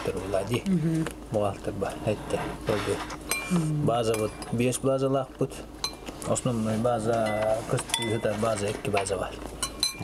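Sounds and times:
man speaking: 0:00.0 - 0:03.1, 0:03.7 - 0:05.7, 0:06.3 - 0:09.4
cutlery clinking against dishes: 0:09.0 - 0:10.0.

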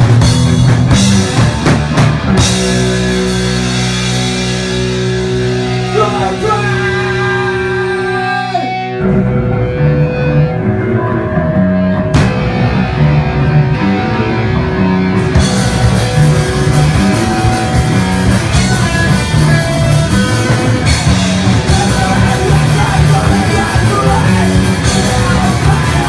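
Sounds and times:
drums and distorted guitar: 0:00.0 - 0:26.0
electric guitar chords: 0:00.0 - 0:26.0.

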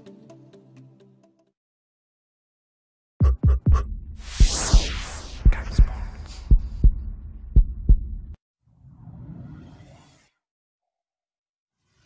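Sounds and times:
heartbeat double thuds: 0:03.2 - 0:08.4
low throb: 0:03.2 - 0:08.4.

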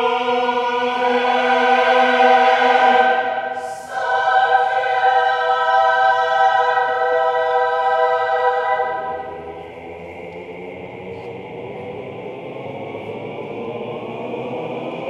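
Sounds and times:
men's choir singing: 0:00.0 - 0:15.0.

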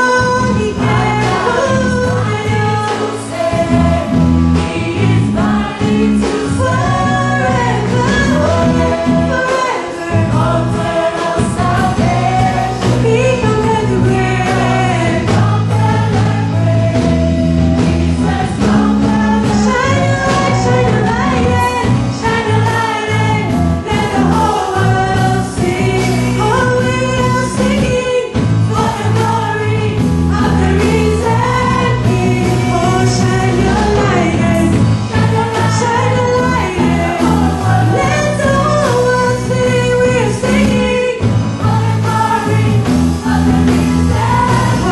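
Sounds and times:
band with drum kit and bass: 0:00.0 - 0:44.9
woman singing into microphone: 0:00.0 - 0:44.9.

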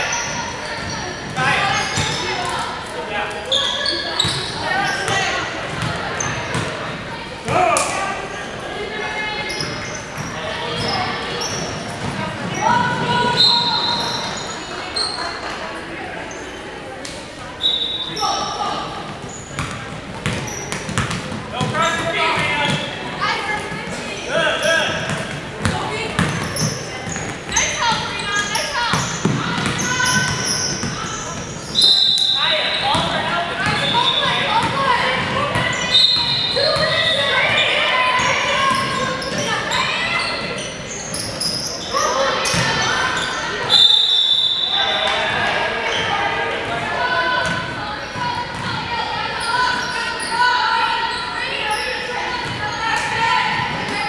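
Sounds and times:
echoing voices: 0:00.0 - 0:54.0
referee whistle blasts: 0:17.6 - 0:18.2, 0:31.7 - 0:32.9, 0:43.7 - 0:45.2.

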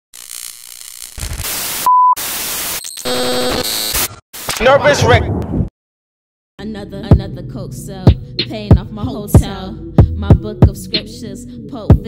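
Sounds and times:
glitchy static bursts: 0:00.2 - 0:04.8
loud steady beep: 0:01.8 - 0:02.2
buzzy electronic tone: 0:02.5 - 0:04.1.

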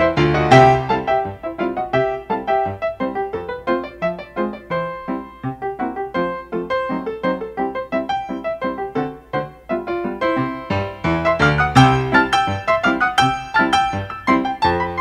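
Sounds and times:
lively piano music: 0:00.0 - 0:15.0.

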